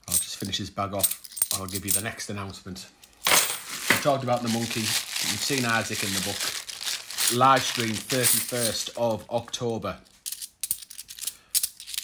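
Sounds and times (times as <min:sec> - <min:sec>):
coins clinking: 0:00.1 - 0:02.0, 0:03.2 - 0:06.4, 0:07.0 - 0:09.1, 0:10.2 - 0:12.0.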